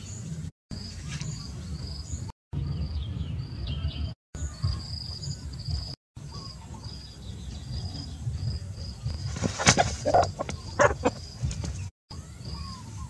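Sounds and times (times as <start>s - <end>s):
insects chirping: 4.8s - 13.0s
rooster wings flapping: 9.1s - 11.9s.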